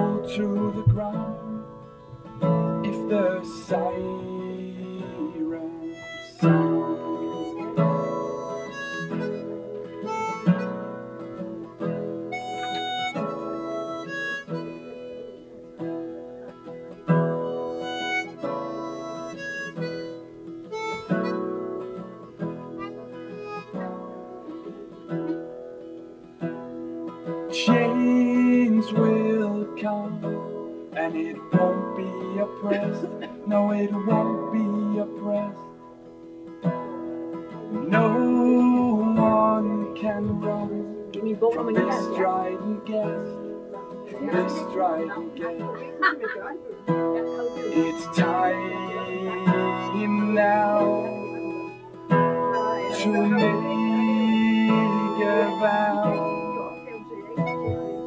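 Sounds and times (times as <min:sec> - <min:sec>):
harmonica playing melody: 0:00.0 - 0:58.0
strummed acoustic guitar: 0:00.0 - 0:58.0.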